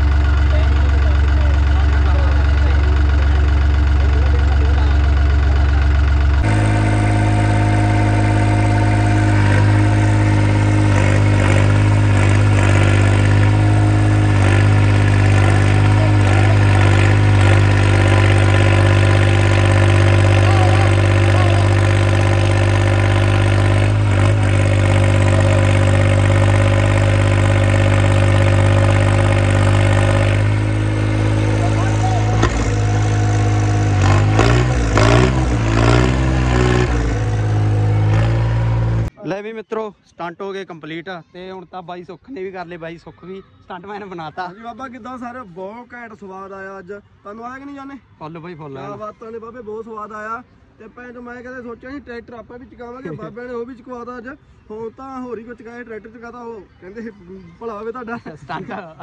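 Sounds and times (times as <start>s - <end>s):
tyres churning sand: 0.0s - 39.1s
diesel tractor engine revving: 0.0s - 39.2s.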